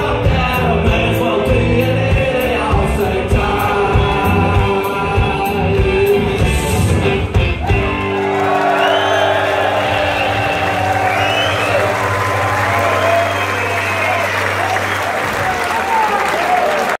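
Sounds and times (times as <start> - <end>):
audience applauding and cheering: 7.4 - 17.0.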